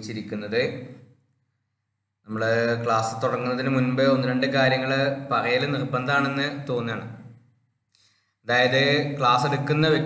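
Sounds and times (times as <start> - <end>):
man speaking: 0.0 - 1.0, 2.2 - 7.4, 8.4 - 10.0.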